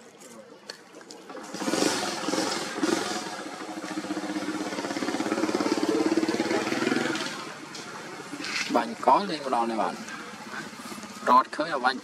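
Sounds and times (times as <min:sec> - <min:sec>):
small engine passing: 0:01.2 - 0:11.6.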